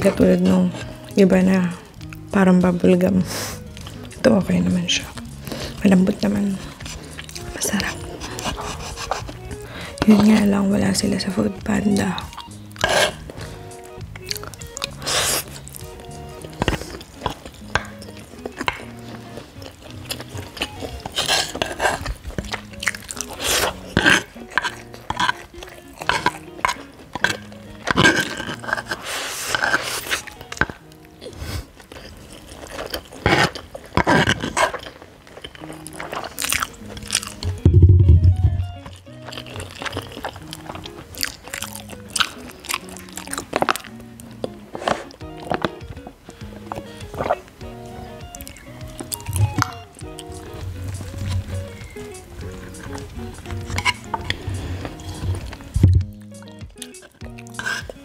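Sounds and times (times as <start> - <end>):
close-up chewing: 0.0 - 58.0
soft background music: 0.0 - 58.0
background music with loud bass: 36.8 - 39.7, 44.0 - 58.0
crunchy bites: 38.4 - 58.0.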